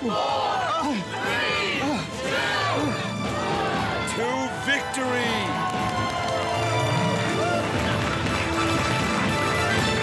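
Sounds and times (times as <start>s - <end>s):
background music: 0.0s - 10.0s
crowd cheering and shouting: 0.0s - 10.0s.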